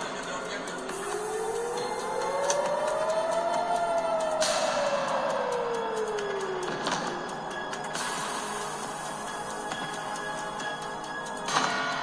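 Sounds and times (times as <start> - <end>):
air-raid siren wailing: 0.8 - 12.0.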